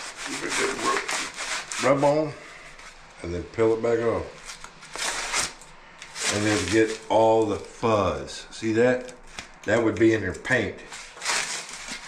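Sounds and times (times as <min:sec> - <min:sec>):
hands rubbing tape on roller: 0:00.0 - 0:03.0, 0:04.4 - 0:07.7, 0:10.9 - 0:12.0.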